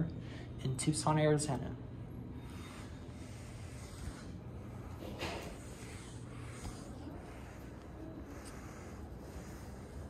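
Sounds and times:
low room hum: 0.0 - 10.0
hand rubbing phone: 2.5 - 10.0.

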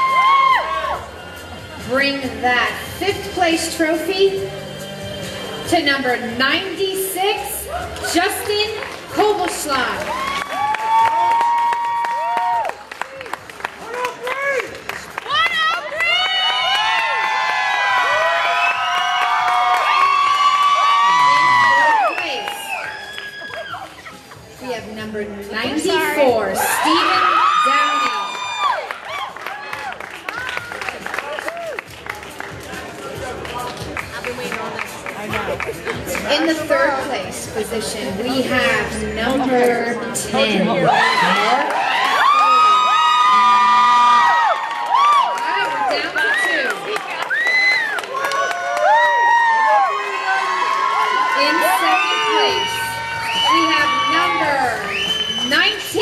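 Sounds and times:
audience cheering and shouting: 0.0 - 1.5, 9.8 - 24.4, 25.8 - 31.8, 40.6 - 56.0.

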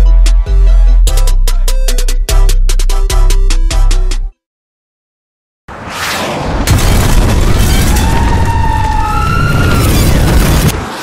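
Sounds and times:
explosion rumble: 6.2 - 10.8.

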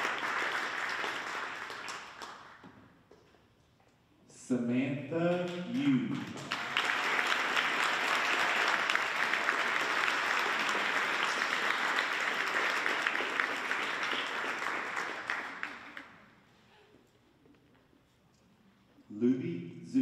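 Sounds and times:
audience applauding: 0.0 - 2.6, 5.3 - 16.3.

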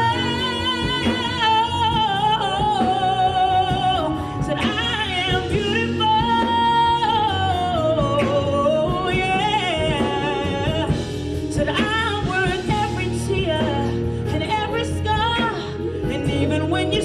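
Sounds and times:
instrumental backing music: 0.0 - 17.0
woman singing into microphone: 0.0 - 17.0.

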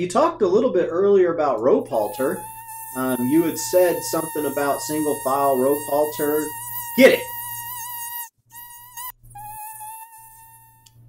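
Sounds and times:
mosquito whining buzz: 1.9 - 11.0.

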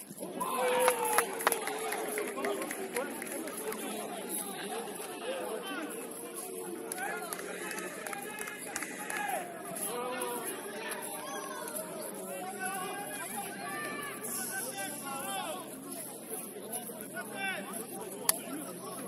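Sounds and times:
people shouting: 0.4 - 1.5.

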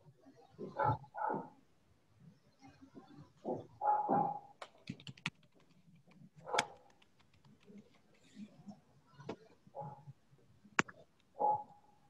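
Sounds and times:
dog barking: 0.6 - 1.6, 3.5 - 4.5, 6.4 - 6.8, 9.7 - 10.1, 11.4 - 11.8
keyboard clicks: 4.6 - 8.0.

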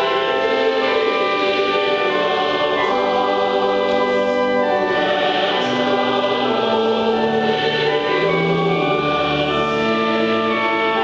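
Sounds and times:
mixed choir singing a hymn: 0.0 - 11.0.

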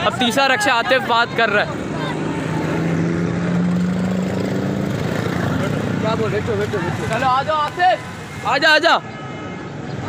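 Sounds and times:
auto-rickshaw engine running: 0.0 - 8.1
street traffic: 0.0 - 10.0.

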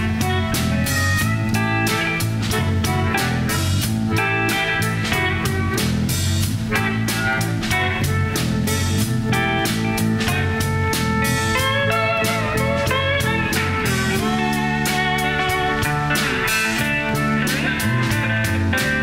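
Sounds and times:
drum kit beat: 0.0 - 19.0
electric guitars: 0.0 - 19.0
guitar lead line bending: 0.0 - 19.0.

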